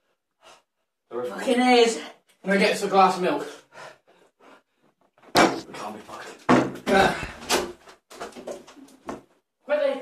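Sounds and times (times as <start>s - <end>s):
sharp thumps: 5.3s - 5.7s.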